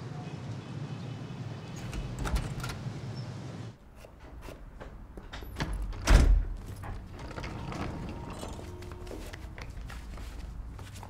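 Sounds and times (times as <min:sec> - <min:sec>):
front door shutting with thud: 0:01.6 - 0:03.1, 0:04.8 - 0:08.1.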